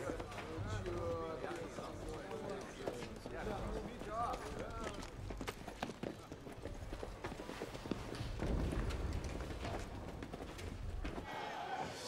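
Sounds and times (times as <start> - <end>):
footsteps on stone steps: 0.0 - 11.3.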